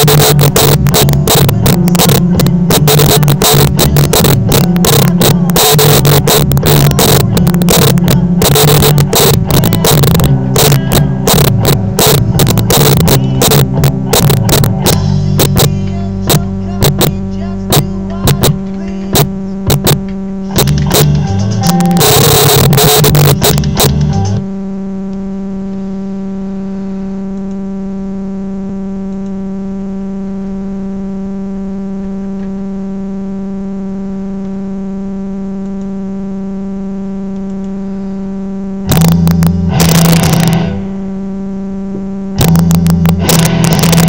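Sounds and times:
band music with sharp guitar: 0.0s - 24.4s, 38.8s - 41.0s, 42.4s - 44.0s
steady electrical hum: 0.0s - 44.0s.

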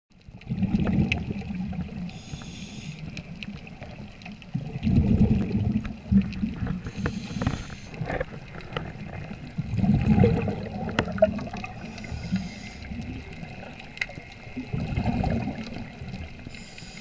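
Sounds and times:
bubbling underwater exhalations: 0.4s - 2.1s, 4.5s - 13.8s, 14.5s - 16.4s
hissing regulator inhalation: 2.1s - 3.2s, 6.8s - 8.0s, 11.8s - 13.0s, 16.4s - 17.0s.

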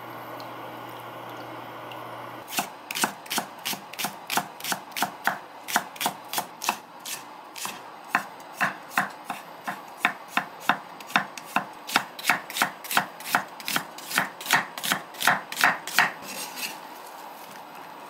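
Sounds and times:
knife chopping on wooden board: 2.5s - 16.2s.

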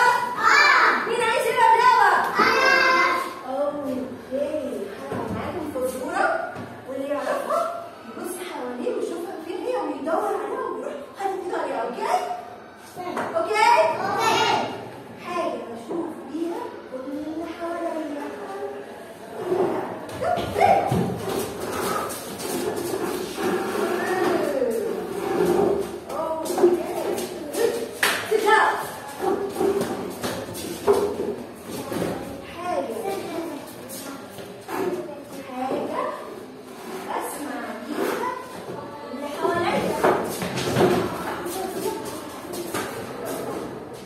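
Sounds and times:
children shouting: 0.0s - 1.1s, 2.3s - 3.3s
chairs and feet knocking: 19.6s - 27.8s, 28.8s - 32.4s, 39.6s - 44.0s
children shuffling: 20.3s - 34.8s, 39.2s - 44.0s.

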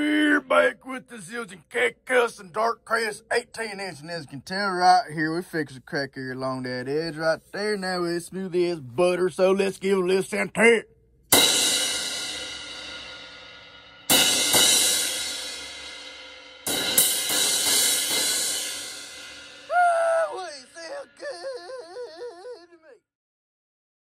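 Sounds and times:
crash cymbal struck: 11.3s - 19.7s
wavering voice-like warble: 20.2s - 23.0s.

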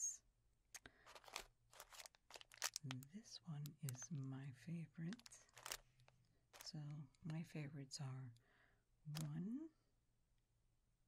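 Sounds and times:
plastic wrappers crinkling: 0.8s - 4.3s, 5.0s - 7.4s.

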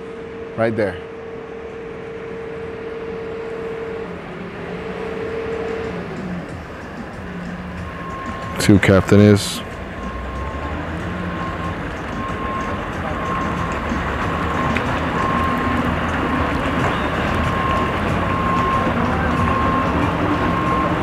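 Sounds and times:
boat engine running: 0.0s - 21.0s
faint high beep: 4.7s - 13.7s, 14.3s - 21.0s.

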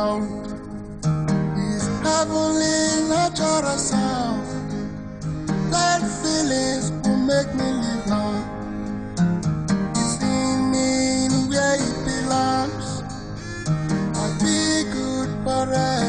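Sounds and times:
acoustic guitar playing: 0.0s - 16.0s.

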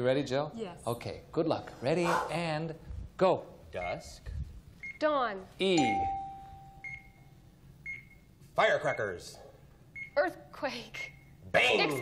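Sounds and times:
short high beeps: 5.8s - 7.3s.

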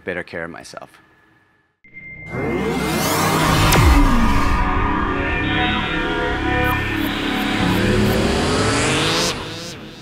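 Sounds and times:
music: 1.8s - 10.0s
rising whoosh with rising tones: 1.9s - 10.0s.

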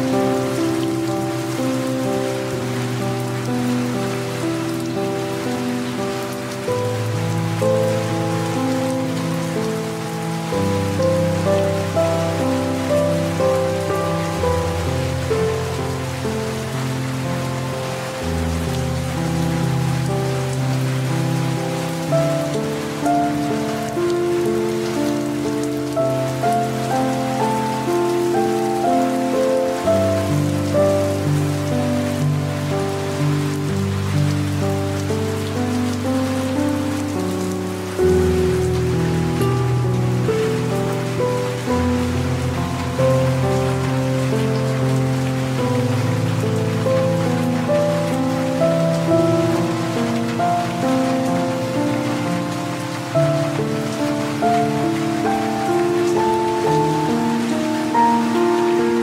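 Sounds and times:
light rain patter: 0.0s - 59.0s
soft slow piano music: 0.0s - 59.0s.

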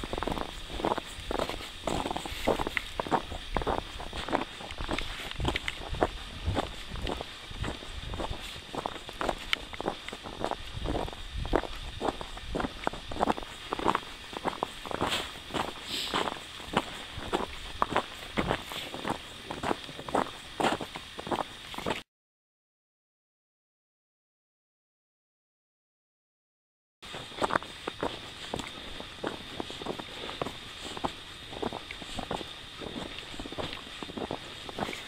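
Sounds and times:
boots crunching in snow: 0.0s - 22.0s, 27.1s - 35.0s.

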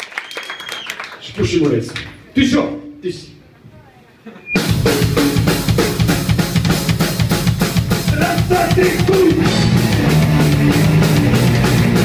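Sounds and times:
drum kit beat: 4.6s - 12.0s
rock band playing: 4.6s - 12.0s
electric guitar: 9.0s - 12.0s.

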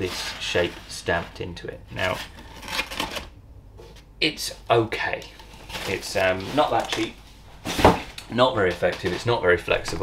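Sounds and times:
cardboard wrap rustling and scraping: 0.0s - 1.2s, 2.0s - 3.3s, 5.2s - 9.4s.

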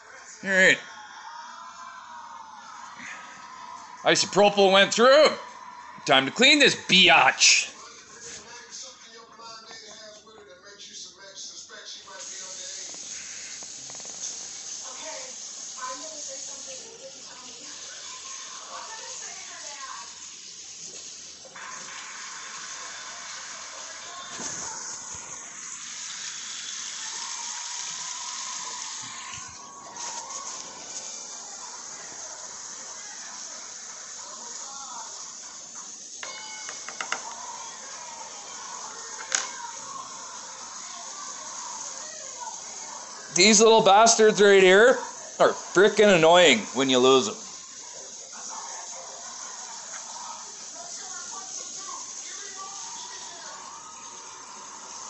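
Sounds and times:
television game show talk: 0.0s - 20.3s, 36.1s - 48.6s
water splashing in a sink: 12.2s - 36.2s.

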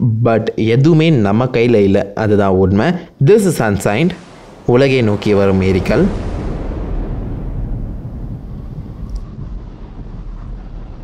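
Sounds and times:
low explosion rumble: 3.6s - 11.0s.

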